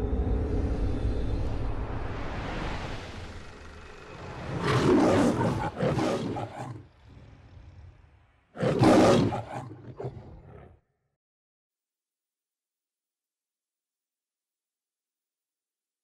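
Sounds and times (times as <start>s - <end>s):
low rumbling drone: 0.0s - 5.8s
lion roaring: 3.4s - 10.9s.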